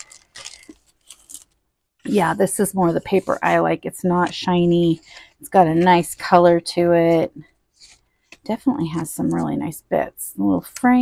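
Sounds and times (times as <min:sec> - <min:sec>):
cellophane packaging crinkling: 0:00.0 - 0:06.2
paper rustling: 0:00.0 - 0:09.6.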